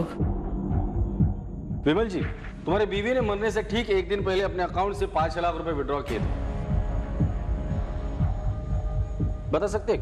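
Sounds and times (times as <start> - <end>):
low throbbing bass pulses: 6.1 - 9.9.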